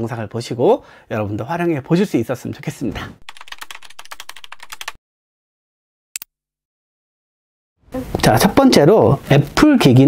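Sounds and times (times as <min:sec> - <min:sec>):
rapid keyboard typing: 0:03.2 - 0:05.0.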